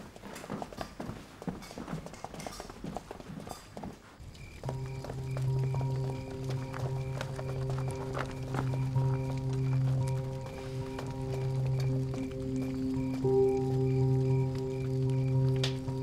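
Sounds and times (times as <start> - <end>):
boots stepping on hard floor: 0.0 - 13.8
dramatic film score: 4.4 - 16.0.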